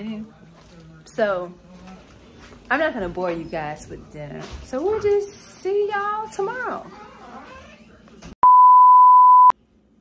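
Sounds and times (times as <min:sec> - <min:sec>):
test-tone beep: 0:08.4 - 0:09.5.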